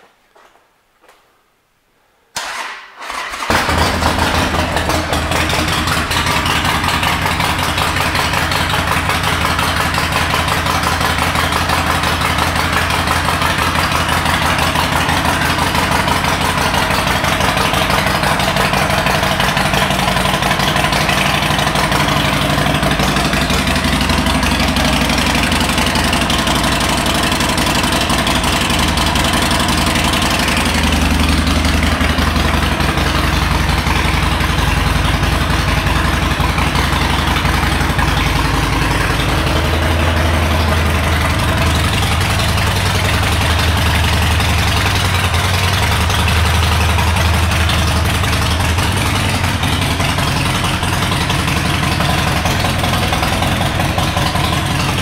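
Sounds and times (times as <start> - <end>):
motorcycle electric starter cranking: 2.4 - 6.6
motorcycle engine idling: 3.1 - 55.0.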